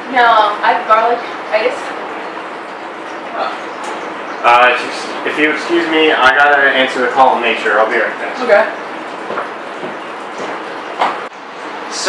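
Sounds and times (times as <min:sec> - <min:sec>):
room hiss: 0:00.0 - 0:09.4
faint soft footsteps: 0:09.2 - 0:11.3.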